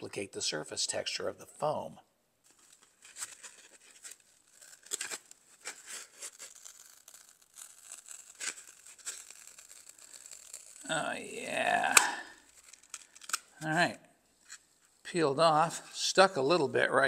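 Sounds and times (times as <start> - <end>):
rubber mold tearing off foam: 2.5 - 13.7.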